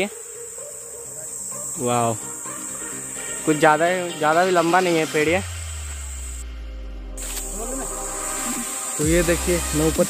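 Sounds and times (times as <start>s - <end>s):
high-pitched insect drone: 0.0s - 10.0s.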